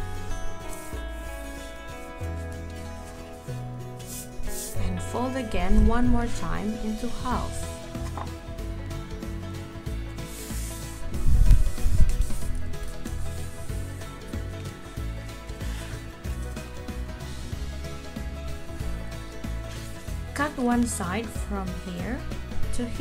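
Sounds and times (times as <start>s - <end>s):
background music with held notes: 0.0s - 23.0s
paper rustling and folding: 2.6s - 4.8s, 11.6s - 13.6s.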